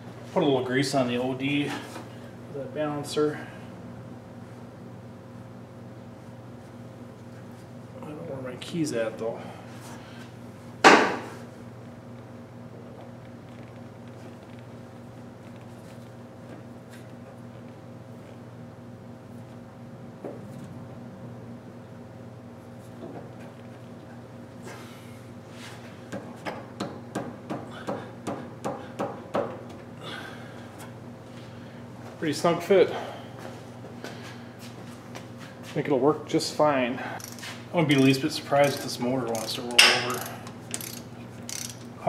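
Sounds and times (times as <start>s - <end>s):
steady low hum: 0.0s - 42.0s
sharp metal knocks: 39.8s - 40.2s.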